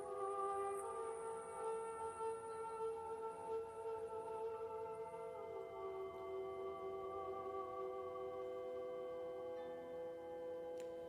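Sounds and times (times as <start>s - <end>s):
meditation music drone: 0.0s - 11.0s.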